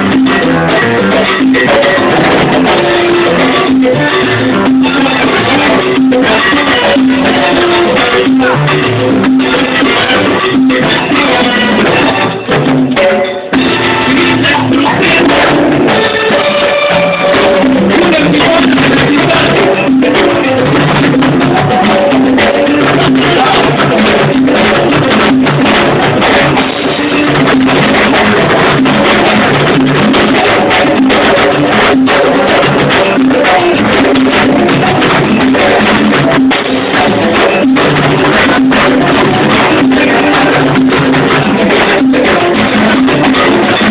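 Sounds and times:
percussion beat: 0.0s - 43.9s
salsa band playing: 0.0s - 43.9s.

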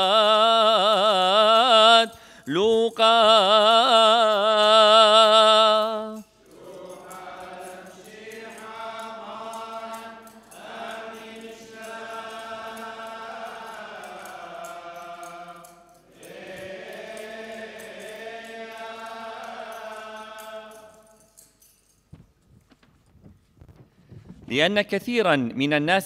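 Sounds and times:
man chanting into a microphone: 0.0s - 6.2s.

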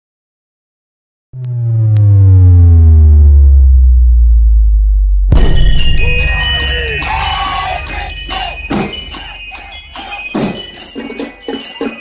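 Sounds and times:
deep synthesized bass tone sliding down: 1.4s - 5.9s.

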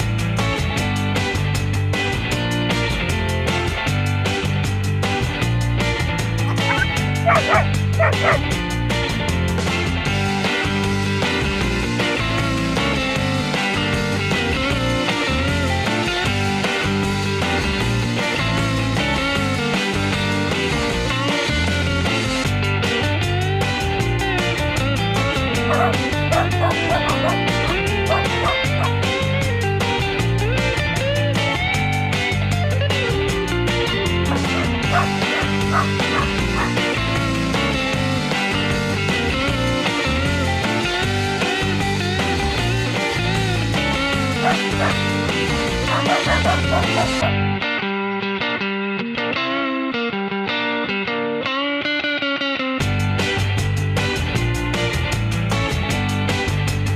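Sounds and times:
background music: 0.0s - 48.7s
cartoon dog yipping barks: 6.5s - 8.4s, 25.7s - 29.0s, 34.3s - 36.8s, 44.4s - 45.0s, 45.9s - 47.4s.

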